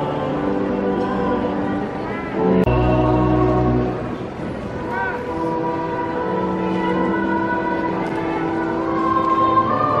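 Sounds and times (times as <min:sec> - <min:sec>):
church music chords: 0:00.0 - 0:10.0.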